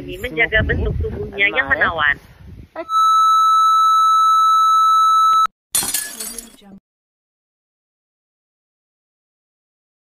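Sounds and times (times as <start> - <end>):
high electronic test beep: 2.9 - 5.5.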